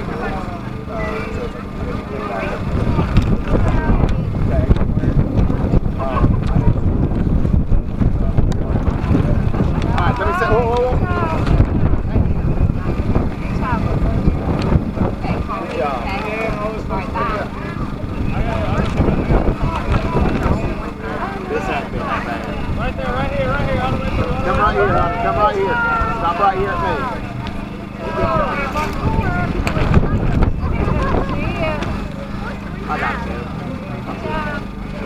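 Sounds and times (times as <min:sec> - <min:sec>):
faint voices: 0:00.0 - 0:35.0
wind buffeting microphone: 0:00.0 - 0:35.0.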